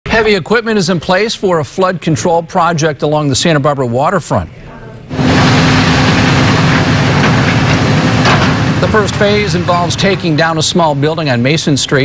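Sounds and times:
diesel engine droning: 5.1s - 11.1s.

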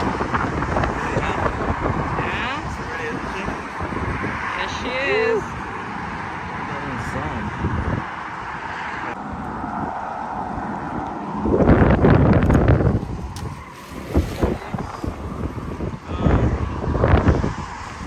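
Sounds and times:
road traffic: 0.0s - 18.0s
wind buffeting microphone: 0.0s - 18.0s.

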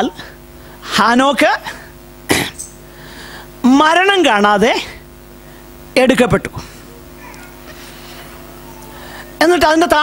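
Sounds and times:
electrical hum of speaker system: 0.0s - 10.0s.

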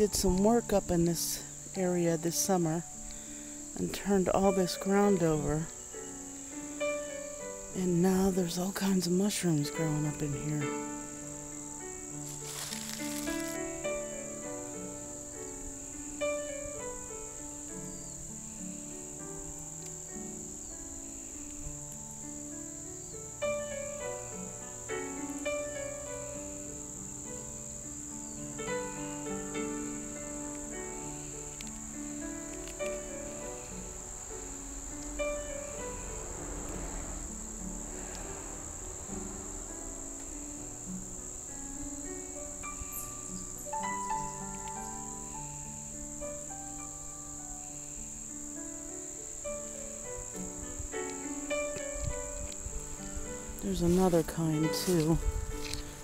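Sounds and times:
crickets chirring: 0.0s - 56.0s
instrumental background music: 39.3s - 56.0s.

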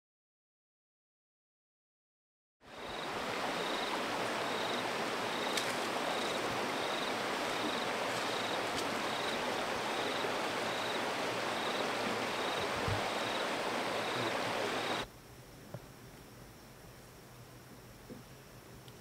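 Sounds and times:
rushing outdoor noise: 2.6s - 19.0s.

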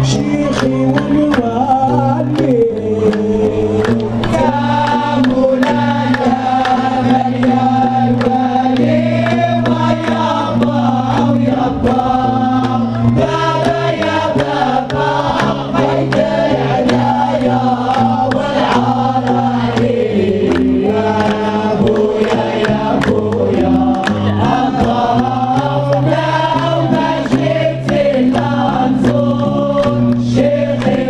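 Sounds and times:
chorus chanting in unison: 0.0s - 31.0s
hand claps beat: 0.0s - 31.0s.

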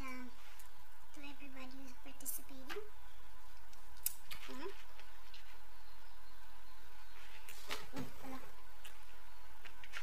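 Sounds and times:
steady faint hum: 0.0s - 10.0s
mouth smacks and clicks eating: 3.6s - 5.5s, 8.8s - 10.0s.

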